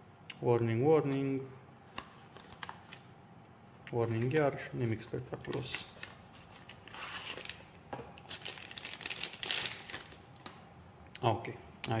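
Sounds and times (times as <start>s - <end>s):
plastic bag crinkling: 6.7s - 10.3s.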